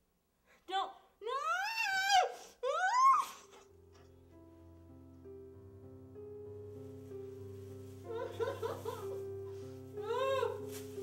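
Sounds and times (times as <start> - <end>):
woman wailing: 1.4 - 3.6, 10.0 - 10.8
low sustained music notes: 3.6 - 11.0.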